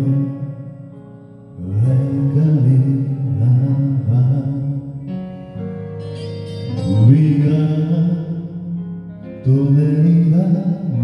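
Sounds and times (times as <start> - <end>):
man singing: 0.0 - 5.3, 6.6 - 11.0
karaoke ballad backing track: 0.0 - 11.0.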